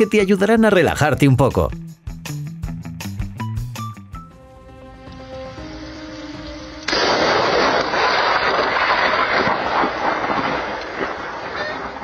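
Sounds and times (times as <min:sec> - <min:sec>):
loud blast: 0:06.9 - 0:12.0.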